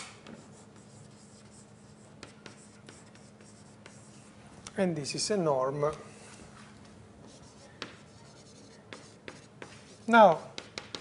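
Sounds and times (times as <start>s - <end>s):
chalk tapping against board: 0.0s - 4.1s, 7.2s - 11.0s
steady low hum: 0.0s - 11.0s
chalk scratching on blackboard: 0.2s - 4.3s, 7.2s - 11.0s.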